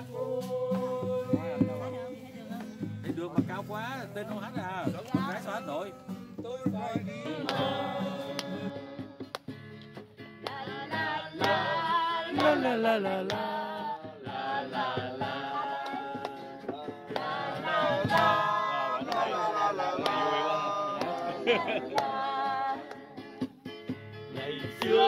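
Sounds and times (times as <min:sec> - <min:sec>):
men and women singing together: 0:00.0 - 0:03.5, 0:04.3 - 0:09.5, 0:10.3 - 0:23.5, 0:24.3 - 0:25.0.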